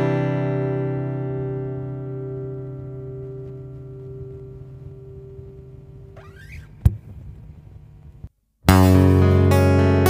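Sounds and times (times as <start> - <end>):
acoustic guitar chord ringing: 0.0 - 6.2
fingers squeaking on guitar strings: 5.4 - 7.1.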